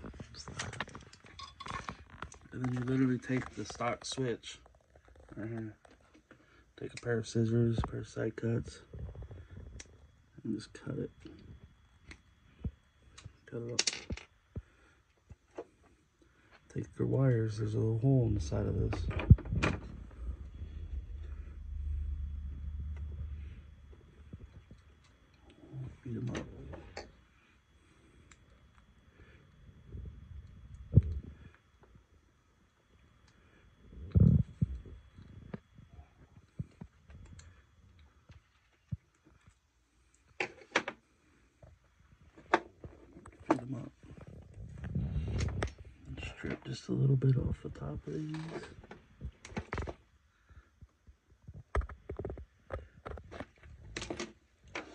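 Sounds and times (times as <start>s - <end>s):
low rumble: 18.2s - 25.0s.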